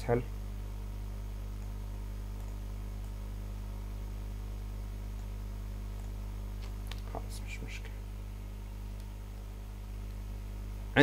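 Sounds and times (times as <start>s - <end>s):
low electrical hum: 0.0s - 11.0s
person whispering: 7.1s - 8.0s.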